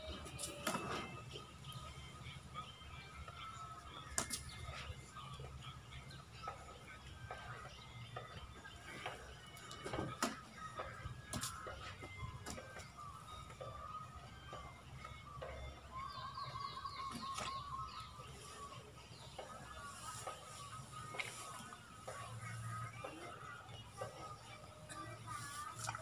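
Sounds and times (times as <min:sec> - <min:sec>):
birds chirping: 0:00.0 - 0:26.0
bird trill: 0:13.2 - 0:21.4.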